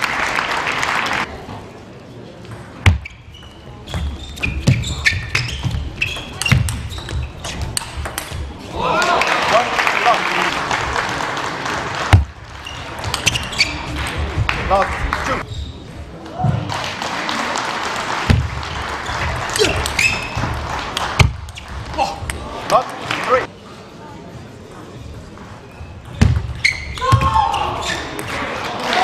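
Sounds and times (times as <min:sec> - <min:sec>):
cheering and applause: 0:00.0 - 0:01.3, 0:08.7 - 0:12.1, 0:28.4 - 0:29.0
ball bouncing: 0:02.4 - 0:08.6, 0:12.1 - 0:15.1, 0:18.3 - 0:22.4, 0:26.0 - 0:28.4.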